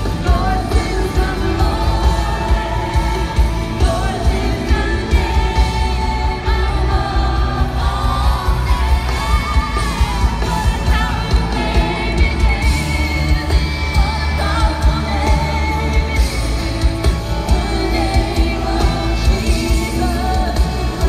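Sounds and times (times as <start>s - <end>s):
pop worship song through speakers: 0.0s - 21.0s.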